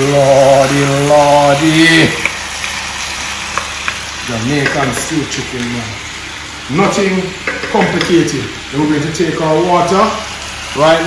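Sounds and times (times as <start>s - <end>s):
food sizzling in a skillet: 0.0s - 11.0s
spoon knocking against pan: 7.4s - 8.1s.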